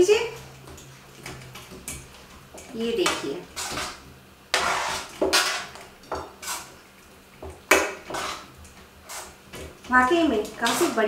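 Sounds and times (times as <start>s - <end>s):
spoon scraping metal pan: 3.5s - 5.7s, 6.4s - 6.8s, 8.0s - 9.4s.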